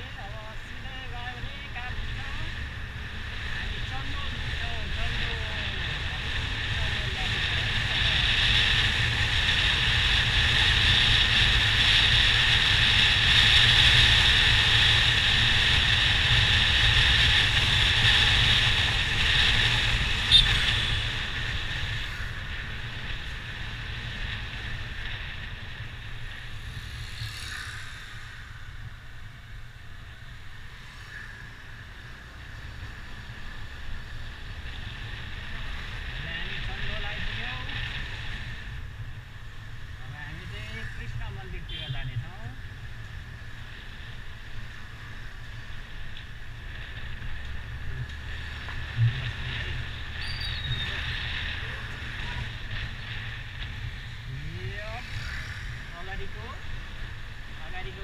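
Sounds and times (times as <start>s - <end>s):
low road rumble: 0.0s - 58.0s
wind rushing over microphone: 0.0s - 58.0s.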